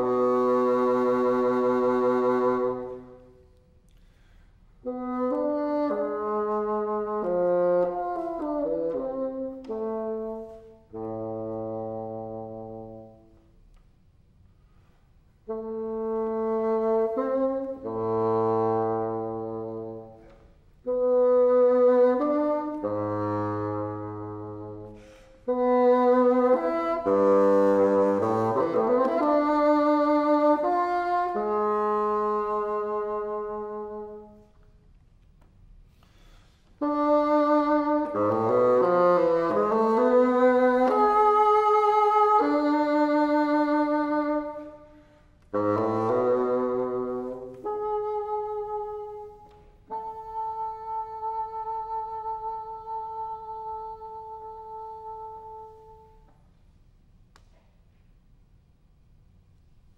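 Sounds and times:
solo bassoon playing: 0.0 - 13.7, 14.6 - 34.8, 36.2 - 56.8.

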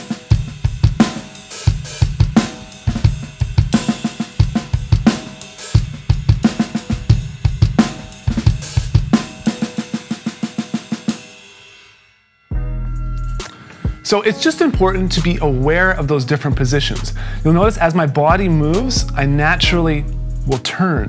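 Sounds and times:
drums played with sticks: 0.0 - 11.9, 13.3 - 20.7
cymbals ringing: 5.1 - 16.1.

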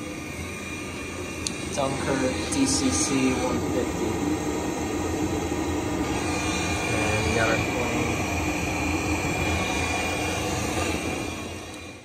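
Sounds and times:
faint high whine: 0.0 - 12.0
gas boiler burner rumbling: 0.0 - 12.0.

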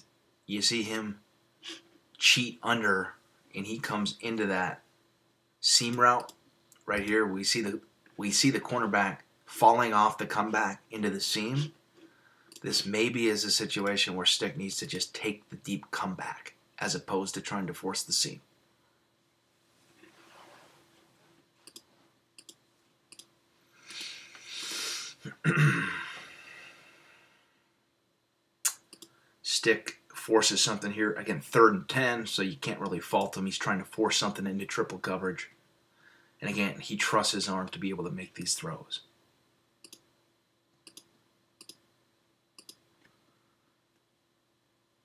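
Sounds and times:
computer mouse clicks: 5.9 - 6.8, 21.6 - 23.3, 28.7 - 29.2, 39.8 - 40.1, 40.8 - 41.8, 42.6 - 43.2
person exhaling: 23.8 - 27.5.

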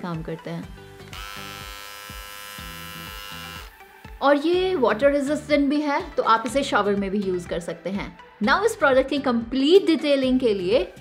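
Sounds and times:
electric trimmer buzzing: 1.0 - 4.3.

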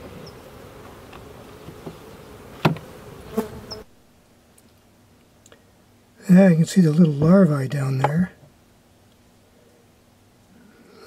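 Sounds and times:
honeybees buzzing: 0.0 - 4.0.

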